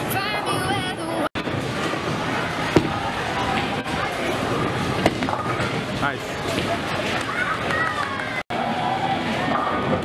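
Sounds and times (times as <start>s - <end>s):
crowd chatter: 0.0s - 10.0s
bowling ball crashing into pins: 4.5s - 5.8s.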